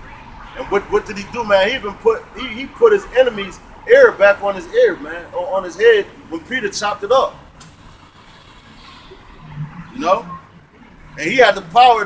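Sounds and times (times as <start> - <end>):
man speaking: 0.6 - 7.4, 10.0 - 10.3, 11.2 - 12.0
passing car tyre hiss: 7.6 - 10.4.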